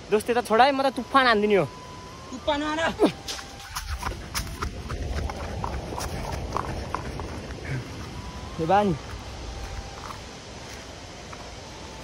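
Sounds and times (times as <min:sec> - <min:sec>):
wind rumble on microphone: 0:01.7 - 0:12.0
footsteps on dirt and grass: 0:02.5 - 0:12.0.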